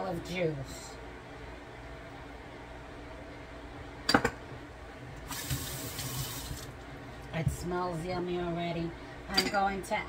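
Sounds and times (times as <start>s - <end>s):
liquid pouring and splashing: 5.3s - 6.7s.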